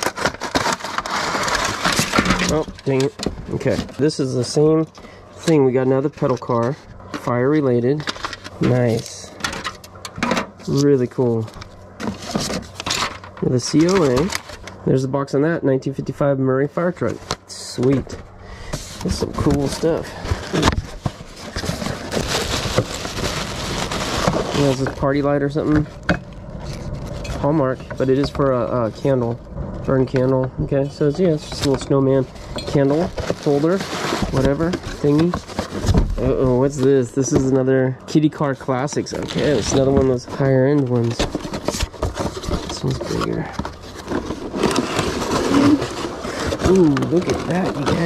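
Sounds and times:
tissue paper crinkling: 0.0 - 3.9, 18.7 - 25.5, 31.6 - 36.9, 39.1 - 48.0
packaging rustling and crackling: 0.0 - 15.1, 16.9 - 37.7, 38.6 - 48.0.

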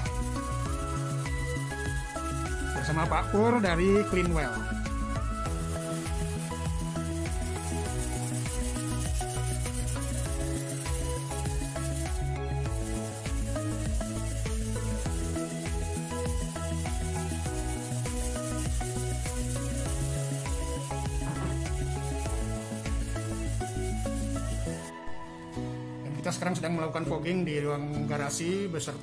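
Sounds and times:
background music with chords: 0.0 - 29.0.

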